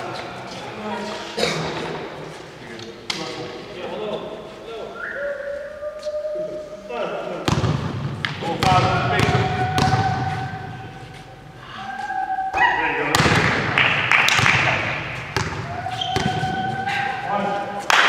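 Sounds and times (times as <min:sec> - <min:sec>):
voices calling out in hall: 0:00.0 - 0:18.0
basketball bouncing on floor: 0:07.5 - 0:10.5, 0:14.3 - 0:16.6.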